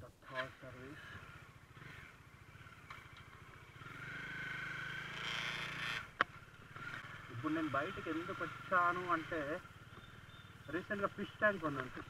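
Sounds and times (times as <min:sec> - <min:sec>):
motorcycle engine running: 0:00.2 - 0:12.0.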